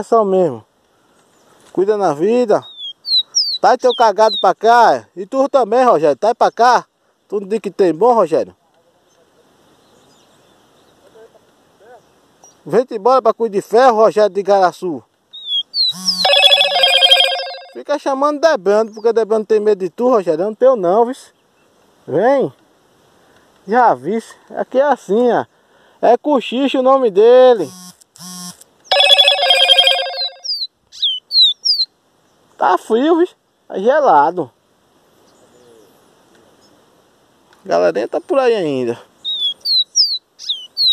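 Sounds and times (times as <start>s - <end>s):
distant bird calls: 2.6s - 4.8s, 11.9s - 12.7s, 15.3s - 17.8s, 28.9s - 32.6s, 39.1s - 40.9s
bird whistling descending notes: 15.4s - 17.8s, 28.9s - 31.8s
rapidly pulsing ringing tones: 16.2s - 17.8s, 28.9s - 30.5s.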